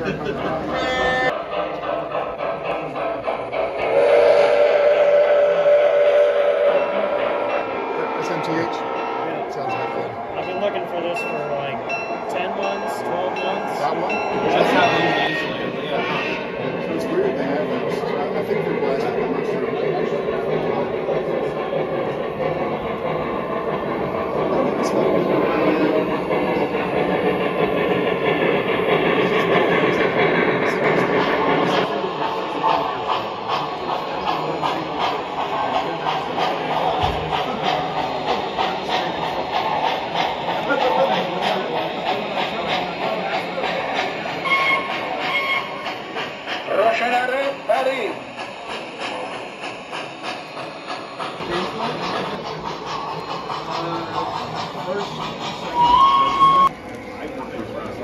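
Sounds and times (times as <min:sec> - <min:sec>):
people talking: 0:00.0 - 0:04.0, 0:06.3 - 0:58.0
model steam locomotive chuffing: 0:00.0 - 0:58.0.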